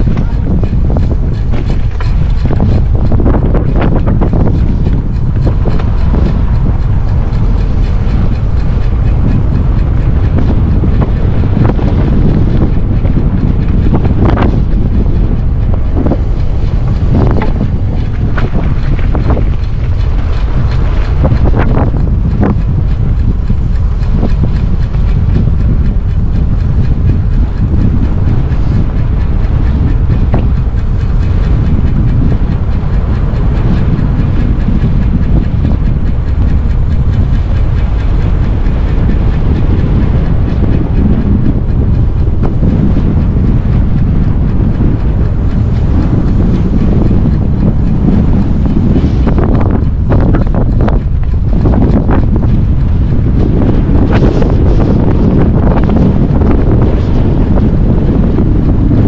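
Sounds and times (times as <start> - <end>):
tyres rumbling on road: 0.0 - 59.0
wind buffeting microphone: 0.0 - 59.0.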